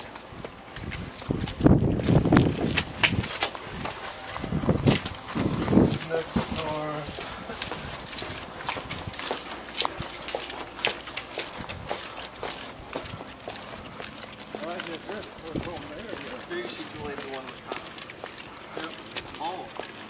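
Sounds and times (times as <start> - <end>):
shoe footsteps on concrete: 0.0 - 20.0
voices: 5.4 - 20.0.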